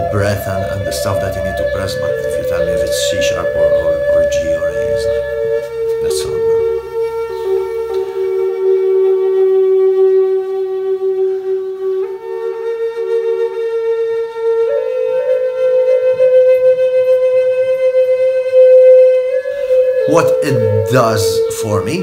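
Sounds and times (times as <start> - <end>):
wooden flute long held notes: 0.0 - 22.0.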